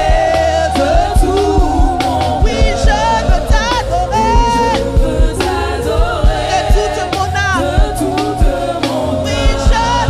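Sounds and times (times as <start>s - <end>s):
band playing a low beat: 0.0s - 10.0s
women singing in harmony: 0.0s - 10.0s.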